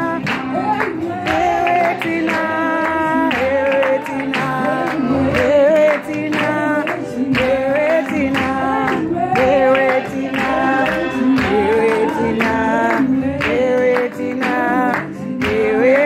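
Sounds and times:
low instrumental backing: 0:00.0 - 0:16.0
woman singing gospel song: 0:00.0 - 0:16.0.

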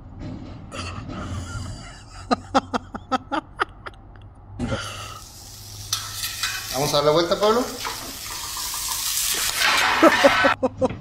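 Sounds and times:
fish sizzling on a grill: 0:05.0 - 0:10.6.

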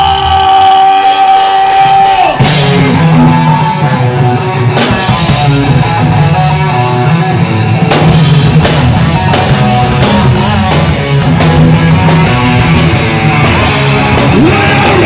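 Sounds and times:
heavy rock band playing: 0:00.0 - 0:15.0.

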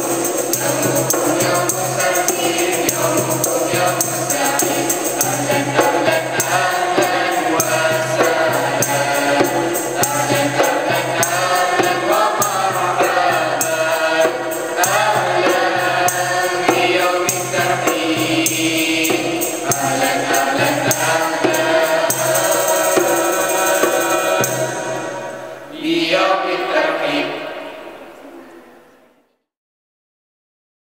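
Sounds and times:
steady percussion beat: 0:00.0 - 0:25.7
children's choir singing: 0:00.0 - 0:29.4.

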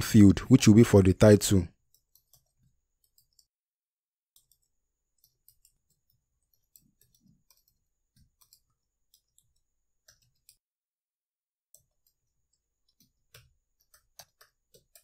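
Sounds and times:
computer keyboard typing: 0:01.8 - 0:03.6, 0:04.3 - 0:10.6, 0:11.7 - 0:15.0.

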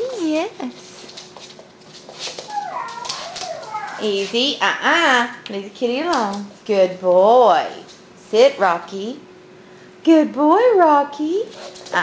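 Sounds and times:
dog whining: 0:02.4 - 0:04.4.

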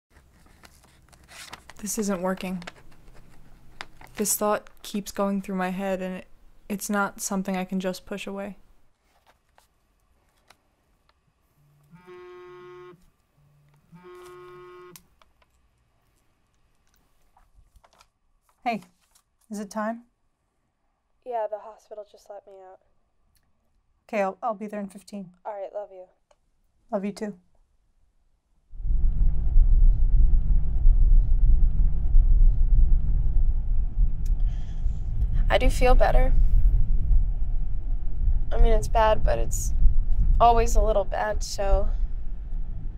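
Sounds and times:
faint low pulsing tone: 0:28.8 - 0:42.9.

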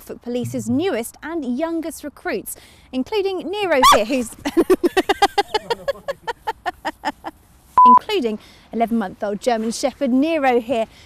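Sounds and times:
electronic beep: 0:00.4 - 0:00.9.

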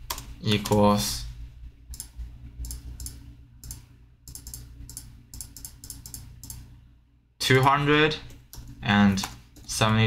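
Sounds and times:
faint low hum: 0:00.0 - 0:10.0
keyboard keys clicking: 0:01.9 - 0:06.6.

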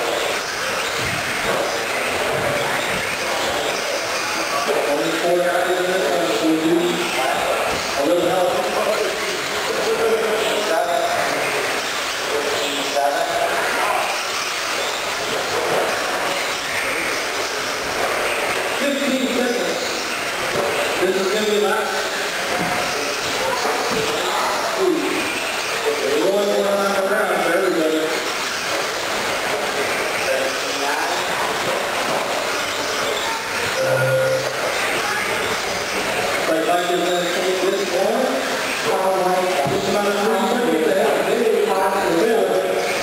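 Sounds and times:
electric rc trucks racing on dirt: 0:00.0 - 0:43.0.

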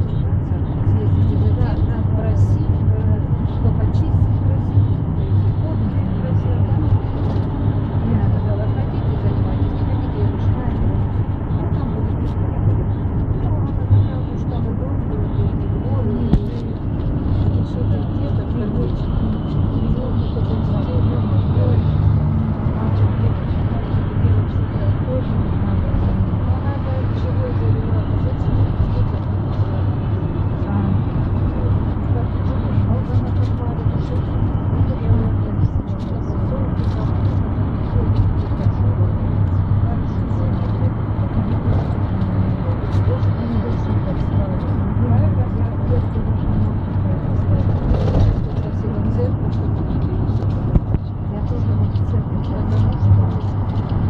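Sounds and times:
bus engine drone: 0:00.0 - 0:54.0
indistinct passenger voices: 0:00.0 - 0:54.0
road noise: 0:00.0 - 0:54.0.

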